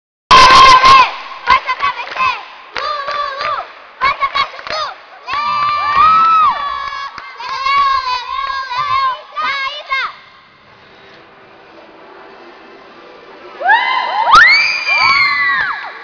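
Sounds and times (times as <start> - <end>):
children shouting and cheering: 0.3 - 10.3, 13.6 - 16.0.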